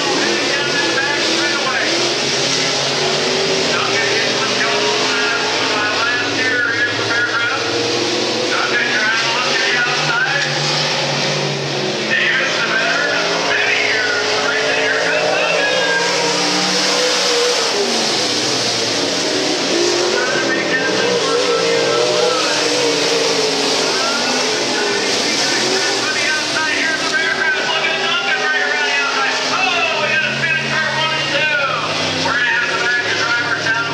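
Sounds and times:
race car engines at speed: 0:00.0 - 0:33.9.

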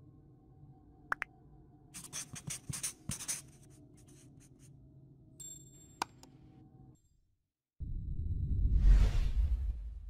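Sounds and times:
marker scribbling: 0:02.0 - 0:04.7.

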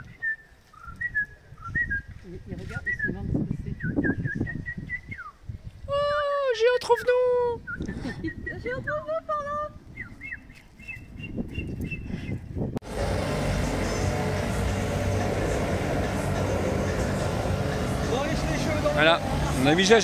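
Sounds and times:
electric air blower running: 0:12.8 - 0:20.0.

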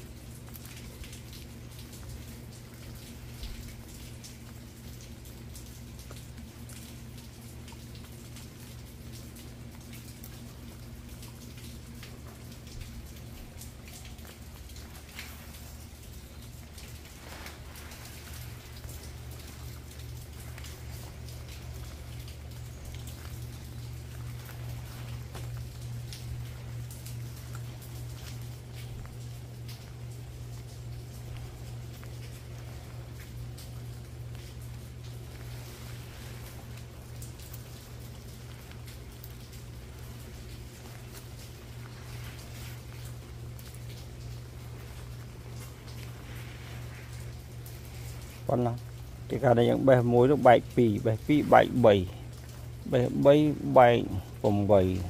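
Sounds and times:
rain pattering on leaves: 0:00.0 - 0:55.0
steady low hum: 0:00.0 - 0:55.0.

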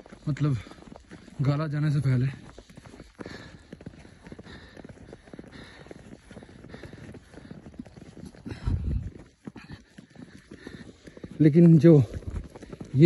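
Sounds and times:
footsteps crunching through snow: 0:00.0 - 0:13.0.

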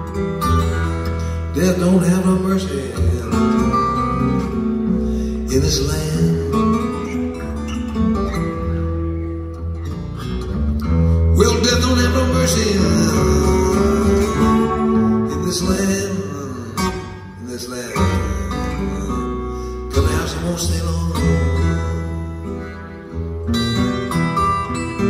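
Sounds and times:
acoustic guitar picking blues: 0:00.0 - 0:25.0.

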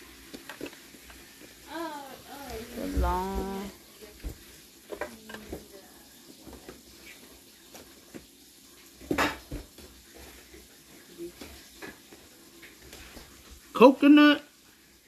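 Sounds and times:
objects clattering: 0:09.0 - 0:10.6.

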